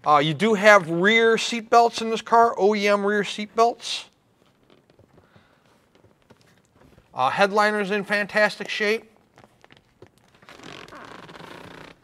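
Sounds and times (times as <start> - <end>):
vinyl seat creaking and rubbing: 4.3 - 7.2, 9.2 - 12.0.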